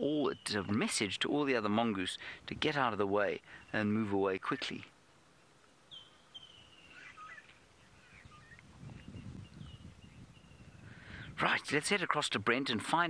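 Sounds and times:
high whistled bird calls: 5.9 - 11.4.

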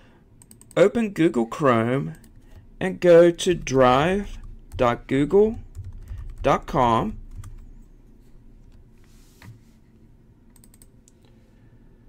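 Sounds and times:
computer keyboard keystrokes: 7.3 - 7.6, 10.5 - 10.9.

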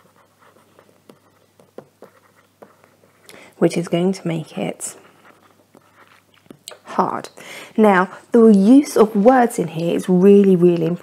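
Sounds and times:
stylus scratching on tablet: 0.0 - 7.2, 8.9 - 11.0.

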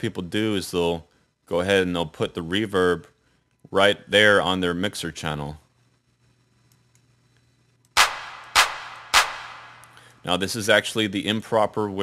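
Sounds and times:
drum machine clap with reverb: 8.0 - 9.9.

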